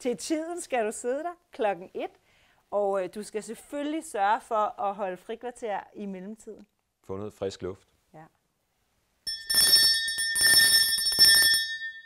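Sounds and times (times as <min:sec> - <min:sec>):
school bell ringing: 0:09.3 - 0:12.0.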